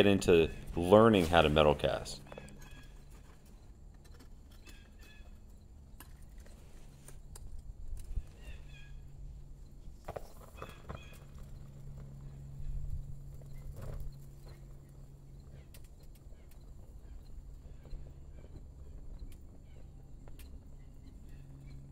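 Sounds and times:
low steady hum: 0.0 - 21.9.

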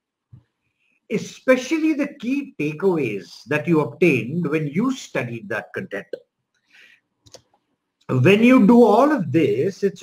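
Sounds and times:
person speaking: 1.1 - 6.4, 7.3 - 10.0
small clicks: 6.5 - 7.7.

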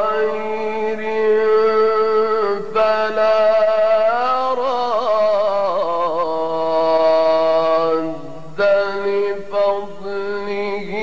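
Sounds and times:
man chanting recitation: 0.0 - 11.0.

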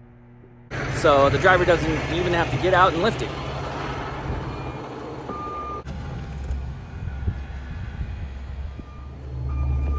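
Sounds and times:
diesel engine rumbling: 0.0 - 9.9
back-up alarm beep: 4.5 - 5.9, 8.8 - 9.9.

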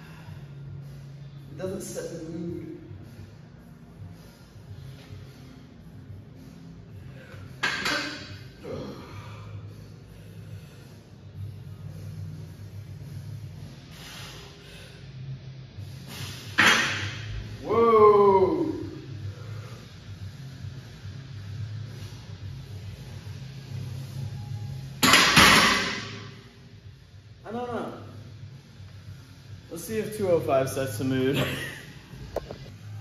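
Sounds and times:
background music: 0.0 - 33.0
person groaning with strain: 8.6 - 9.3.

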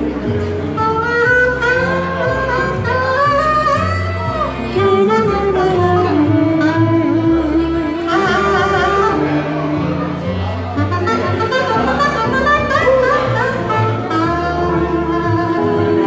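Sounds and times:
bowed violin: 0.0 - 16.0
low bass line: 0.0 - 16.0
saxophone melody: 0.0 - 16.0.

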